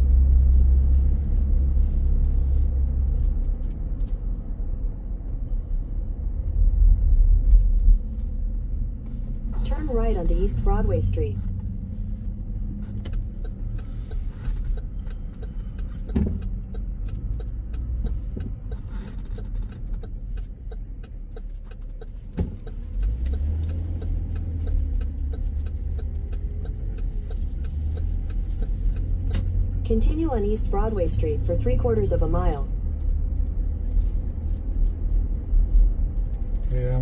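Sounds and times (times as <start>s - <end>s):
car cabin road rumble: 0.0s - 37.0s.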